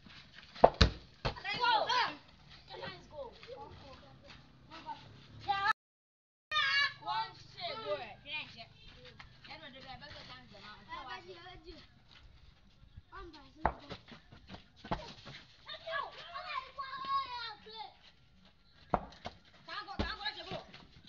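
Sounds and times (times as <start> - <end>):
ball kicked on dirt: 0.5 - 1.7, 13.6 - 15.4, 18.9 - 20.9
children calling and chattering: 1.4 - 5.8, 6.5 - 18.8.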